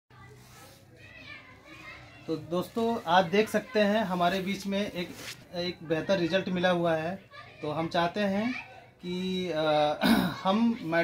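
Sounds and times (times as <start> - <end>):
faint distant voices: 0.1 - 11.0.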